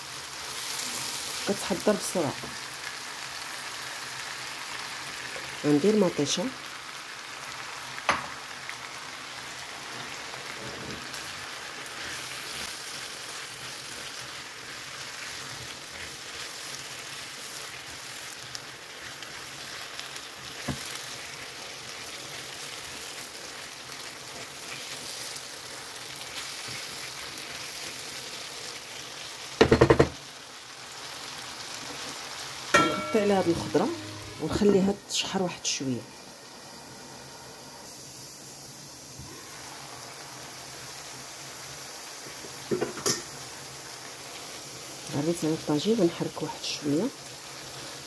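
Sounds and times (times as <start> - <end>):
vegetables sizzling in oil: 0.0 - 48.0.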